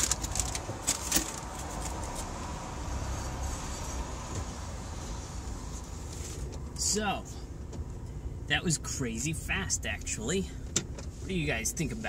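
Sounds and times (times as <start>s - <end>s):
paper bag crinkling: 0.0s - 2.3s.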